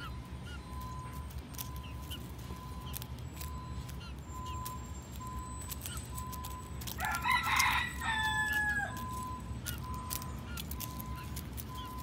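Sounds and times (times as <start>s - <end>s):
rooster crowing: 6.9s - 9.2s.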